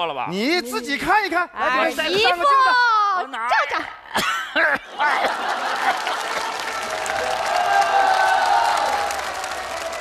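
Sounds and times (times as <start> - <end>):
audience applauding: 5.1 - 10.0.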